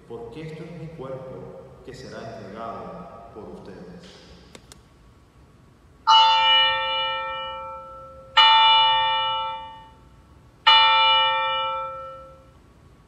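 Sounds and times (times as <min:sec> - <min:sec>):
altar bell ringing: 0:06.1 - 0:10.0, 0:10.7 - 0:12.5.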